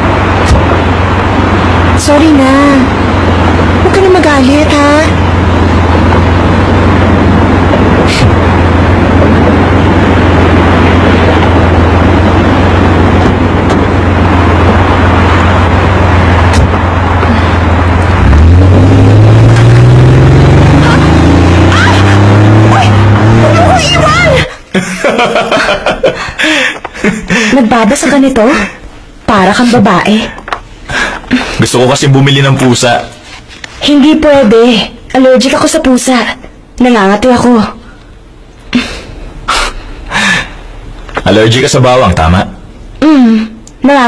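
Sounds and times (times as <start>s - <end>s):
car engine accelerating: 0.0s - 44.0s
road traffic hum: 0.0s - 44.0s.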